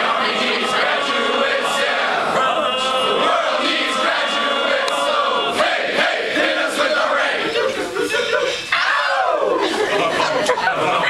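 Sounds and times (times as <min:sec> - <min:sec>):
group of voices singing: 0:00.0 - 0:09.9.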